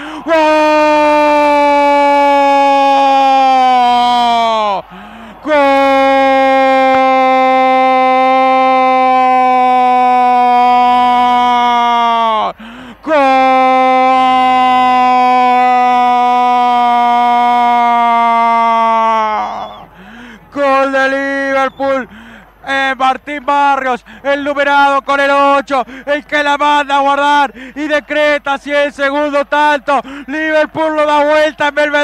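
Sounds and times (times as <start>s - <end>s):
announcer shouting goal: 0.0s - 19.7s.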